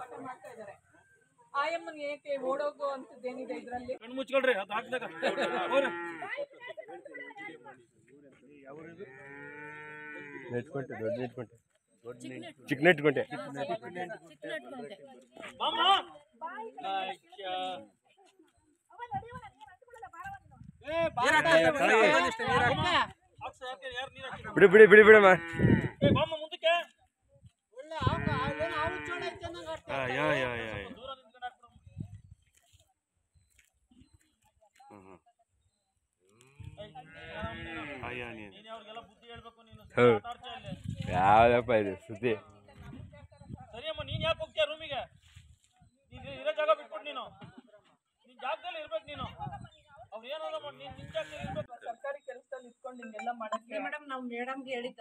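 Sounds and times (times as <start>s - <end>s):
cow mooing: 5.2s - 6.4s, 9.1s - 10.6s, 25.3s - 26.0s.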